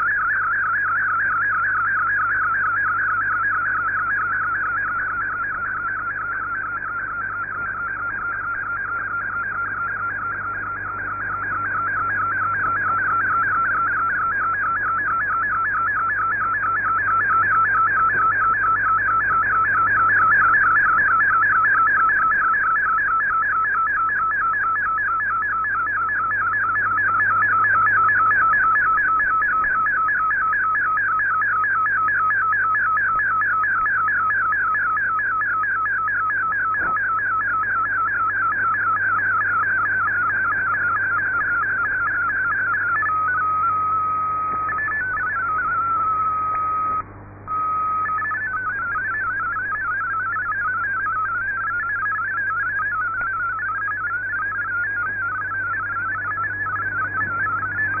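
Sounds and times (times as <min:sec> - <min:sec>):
high warbling radio data tone: 0:11.4 - 0:58.0.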